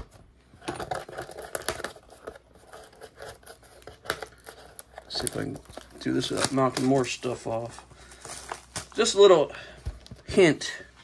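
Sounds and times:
plastic wrap crinkling and tearing: 0.6s - 9.2s.

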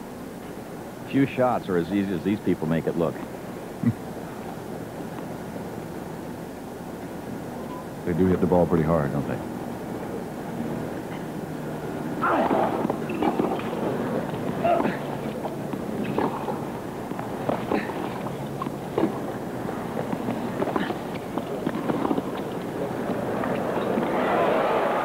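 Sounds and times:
racquet hitting tennis ball: 12.3s - 24.2s.

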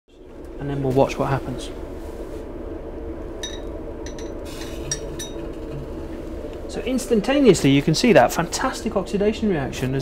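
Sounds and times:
extraction fan humming: 0.1s - 10.0s
glassware clinking: 3.4s - 5.7s.

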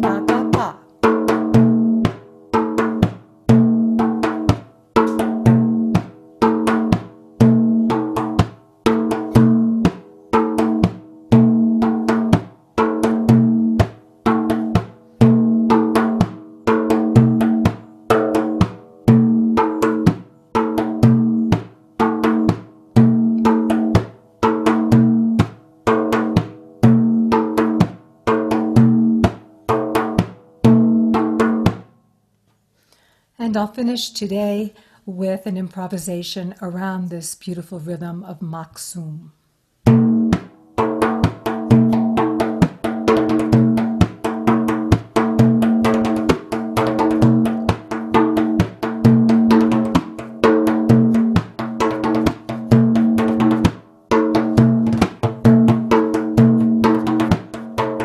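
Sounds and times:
frame drum rhythm: 0.0s - 31.9s, 39.8s - 58.0s.

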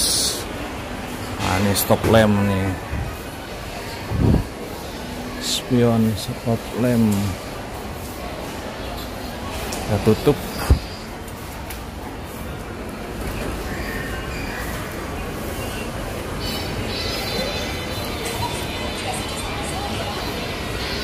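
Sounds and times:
distant voices: 0.0s - 21.0s
steady background hum: 0.0s - 21.0s
faint background music: 15.5s - 21.0s.

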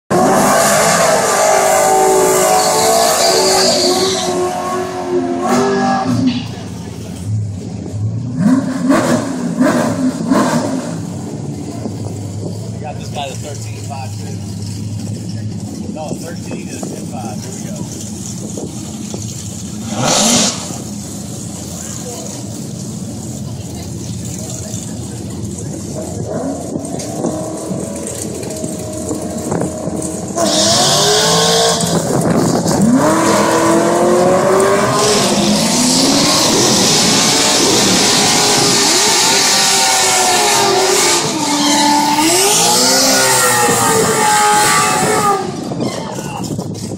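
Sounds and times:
car engine revving: 0.1s - 45.9s.

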